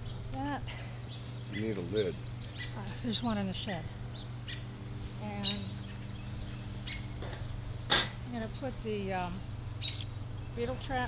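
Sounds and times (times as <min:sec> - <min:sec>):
low steady hum: 0:00.0 - 0:11.0
faint bird chirp: 0:09.8 - 0:11.0.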